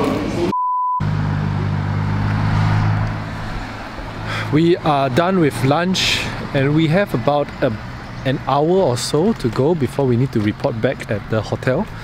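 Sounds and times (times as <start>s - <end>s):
electronic beep: 0.5s - 1.0s
car engine idling: 1.0s - 12.0s.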